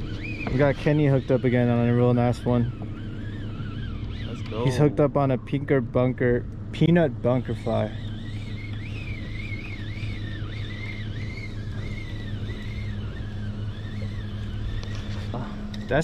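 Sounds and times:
boat motor humming: 0:00.0 - 0:16.0
faint high whine: 0:00.0 - 0:16.0.

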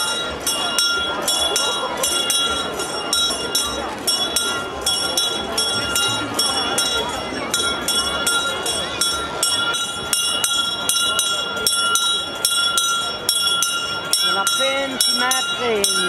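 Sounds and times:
crowd murmur: 0:00.0 - 0:16.0
steady high tones: 0:00.0 - 0:16.0.

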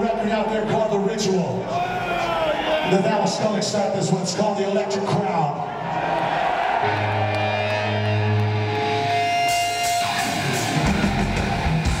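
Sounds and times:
electric guitar playing heavy metal: 0:06.8 - 0:12.0.

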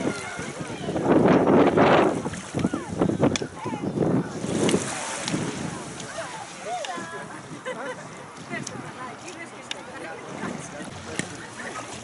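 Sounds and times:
faint indistinct voices: 0:00.0 - 0:12.0
water sloshing around wading feet: 0:00.0 - 0:12.0
wind on microphone: 0:00.0 - 0:12.0.

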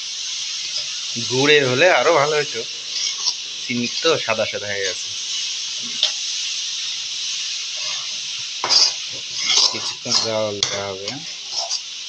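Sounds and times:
sizzling hiss: 0:00.0 - 0:12.0
spatula scraping wok: 0:00.5 - 0:12.0.

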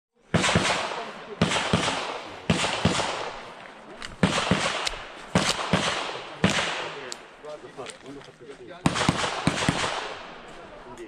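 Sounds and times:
handgun shots with echo: 0:00.4 - 0:03.4, 0:04.1 - 0:07.2, 0:08.9 - 0:10.3.

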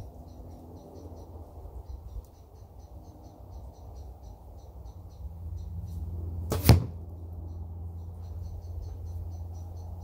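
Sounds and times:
arrow striking hay target: 0:06.5 - 0:07.0.

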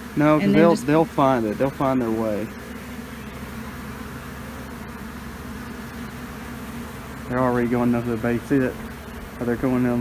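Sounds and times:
swarm of bees buzzing: 0:00.0 - 0:10.0.

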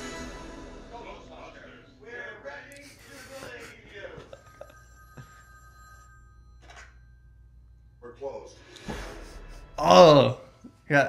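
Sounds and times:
telephone ringing: 0:02.3 - 0:08.8.

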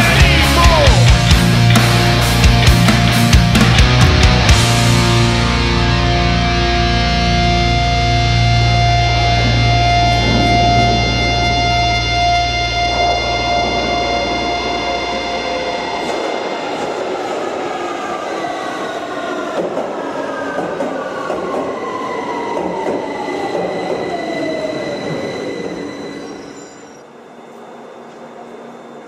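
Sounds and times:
heavy band recording: 0:00.0 - 0:17.0
noisy tones sliding downward: 0:00.0 - 0:29.0.

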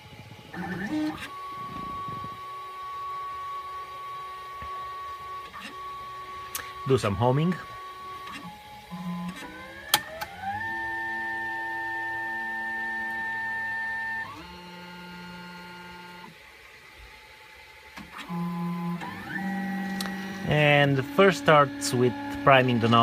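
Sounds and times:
stepper motors whining: 0:00.0 - 0:16.4, 0:17.8 - 0:23.0.

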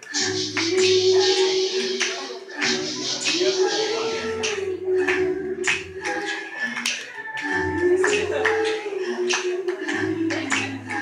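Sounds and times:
hand claps: 0:00.0 - 0:11.0
layered sung tones: 0:00.0 - 0:11.0.

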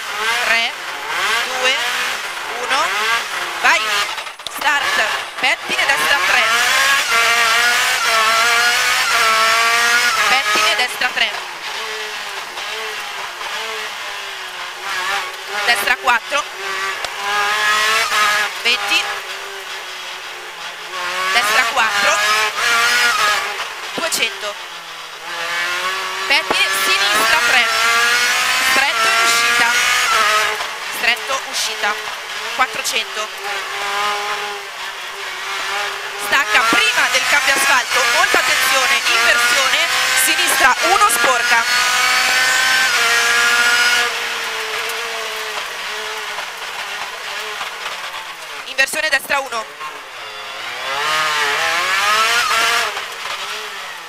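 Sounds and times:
rally car engine from cockpit: 0:00.0 - 0:54.0.

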